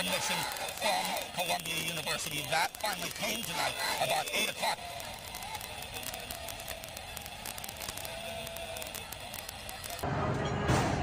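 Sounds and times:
small clicks and crackles: 0.0s - 10.0s
faint outdoor background noise: 0.0s - 11.0s.

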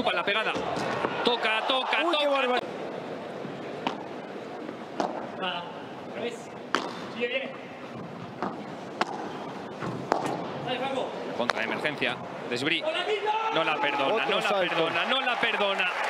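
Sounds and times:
murmur of arena crowd: 0.0s - 16.0s
ball bouncing: 5.0s - 5.3s, 6.7s - 7.1s, 8.0s - 10.5s
padel ball struck by rackets: 8.4s - 10.4s.

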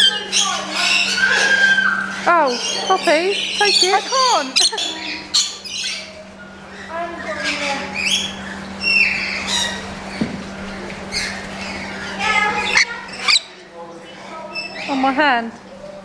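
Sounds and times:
parrots squawking and screeching: 0.0s - 15.3s
steady low hum: 0.0s - 16.0s.

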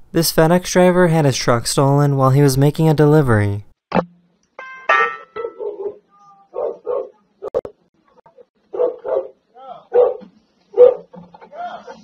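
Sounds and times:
dog barking: 5.4s - 7.7s, 8.7s - 11.2s.

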